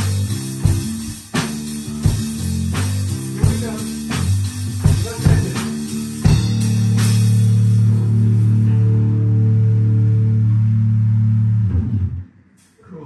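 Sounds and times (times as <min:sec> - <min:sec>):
drum kit accent: 0:00.0 - 0:09.2
bass note ringing: 0:06.0 - 0:12.5.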